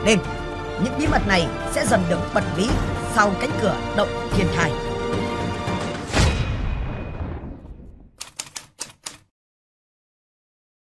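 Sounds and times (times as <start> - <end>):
typewriter keystroke clicks: 8.2 - 9.3.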